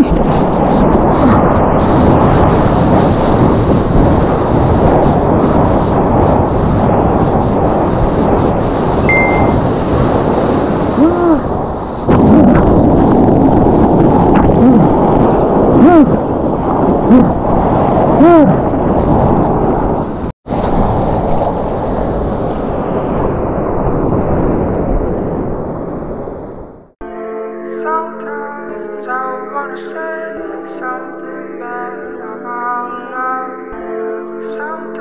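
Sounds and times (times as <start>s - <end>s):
wind on camera: 0.0s - 27.0s.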